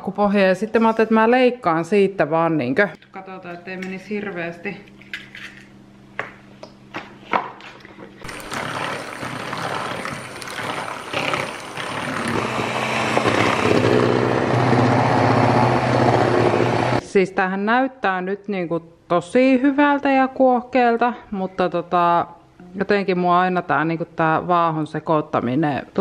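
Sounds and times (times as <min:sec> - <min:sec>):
electric hand mixer whining: 0:08.2 - 0:17.0.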